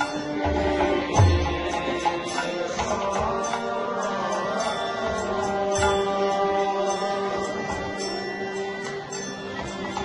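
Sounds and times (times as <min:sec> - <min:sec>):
group chanting: 0:00.0 - 0:09.8
hand drums: 0:00.0 - 0:10.0.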